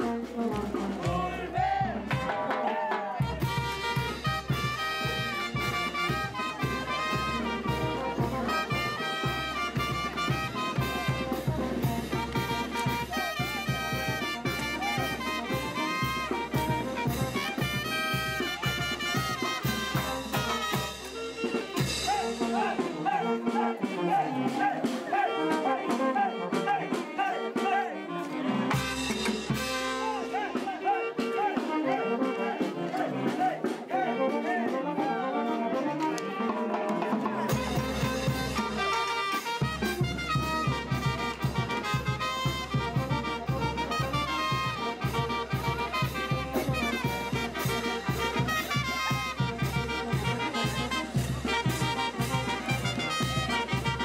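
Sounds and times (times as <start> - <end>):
drum and bass beat: 0.0 - 34.9, 37.0 - 54.0
brass horns playing: 0.0 - 54.0.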